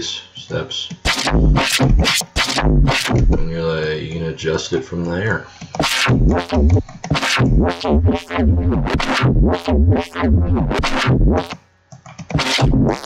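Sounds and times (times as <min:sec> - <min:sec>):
synthesized bass with filter sweeps: 0:01.1 - 0:03.6, 0:05.8 - 0:11.6, 0:12.3 - 0:13.0.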